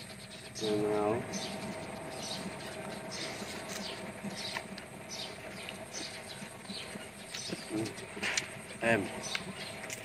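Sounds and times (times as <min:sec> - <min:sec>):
wet crunchy chewing: 0:01.6 - 0:10.0.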